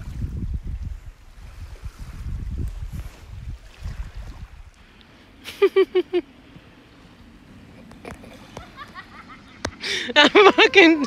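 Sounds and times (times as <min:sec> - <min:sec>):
small waves on sandy beach: 0:00.0 - 0:11.0
person laughing: 0:05.4 - 0:06.2, 0:07.7 - 0:11.0.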